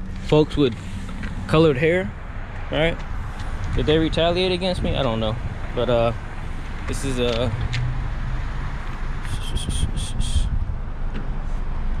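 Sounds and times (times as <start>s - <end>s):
low outdoor rumble: 0.0s - 12.0s
short high chirps: 9.2s - 10.5s.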